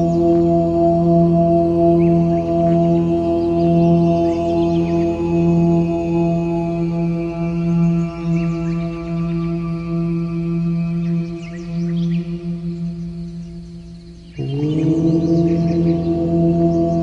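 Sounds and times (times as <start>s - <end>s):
chanted drone: 0.0s - 17.0s.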